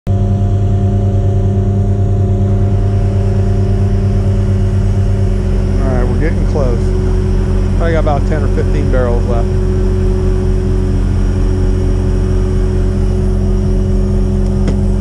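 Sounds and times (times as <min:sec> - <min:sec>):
truck engine running: 0:00.1 - 0:15.0
man talking: 0:05.7 - 0:07.0, 0:07.8 - 0:09.5.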